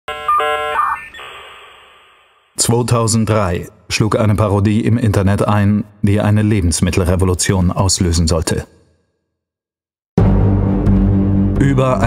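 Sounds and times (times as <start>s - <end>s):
synthesized electronic tones: 0.1s - 2.6s.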